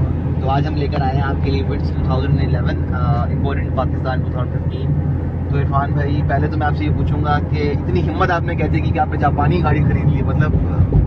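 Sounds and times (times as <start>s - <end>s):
people talking: 0.0s - 4.9s, 5.5s - 11.0s
car engine and road drone: 0.0s - 11.0s.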